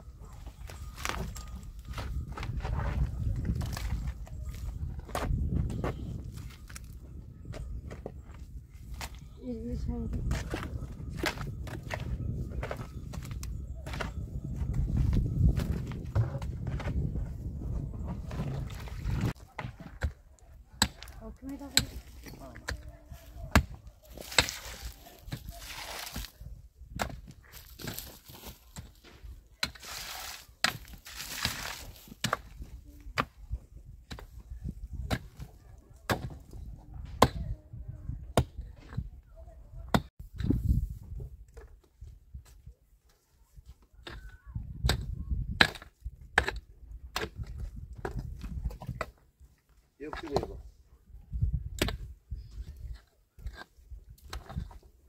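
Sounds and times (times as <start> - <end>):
shovel scraping wet earth: 23.5 - 26.4, 27.5 - 32.5.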